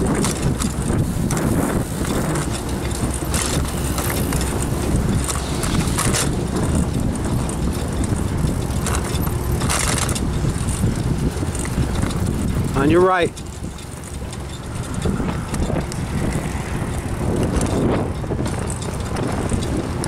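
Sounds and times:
bicycle rumbling over concrete: 0.0s - 20.0s
wind rushing on microphone: 0.0s - 20.0s.

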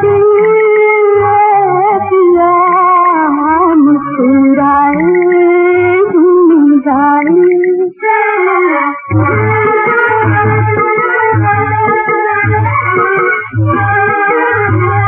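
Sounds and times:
sliding vocal melody: 0.0s - 15.0s.

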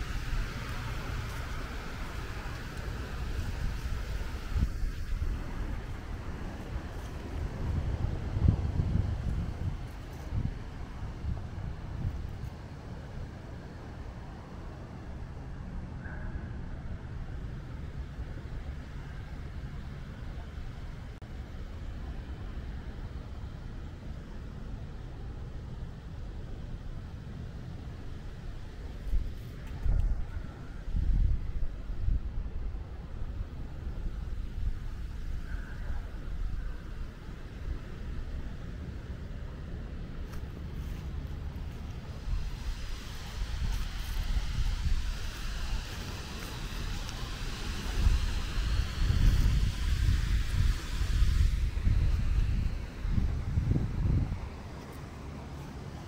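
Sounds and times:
hiss: 0.0s - 13.3s, 40.2s - 56.0s
low outdoor rumble: 0.0s - 56.0s.

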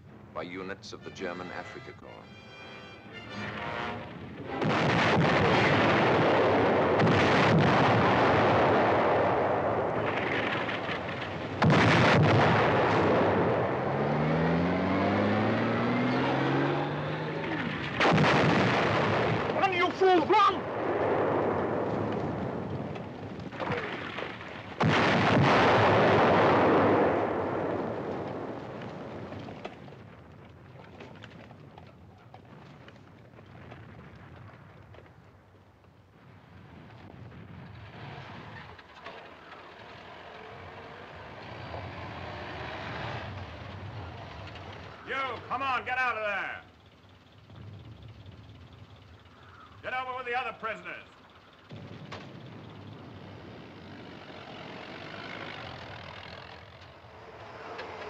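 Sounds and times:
artillery shells exploding: 3.5s - 13.9s, 17.4s - 35.4s.

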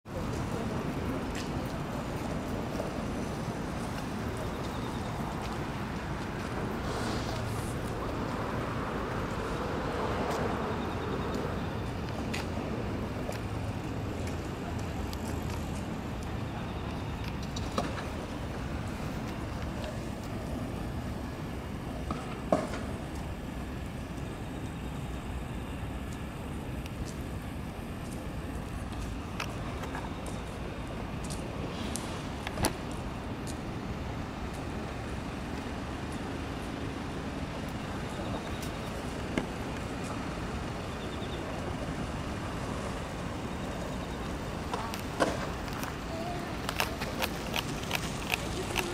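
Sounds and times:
city traffic noise: 0.0s - 48.9s.

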